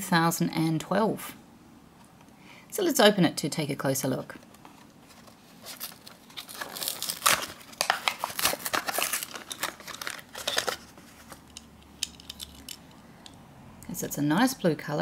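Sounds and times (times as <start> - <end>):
plastic blister crinkling: 4.4 - 13.0
card packaging tearing: 5.6 - 11.5.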